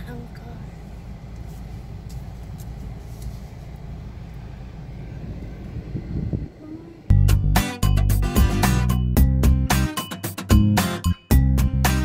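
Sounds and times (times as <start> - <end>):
engine and tyre rumble in car: 0.0 - 7.1.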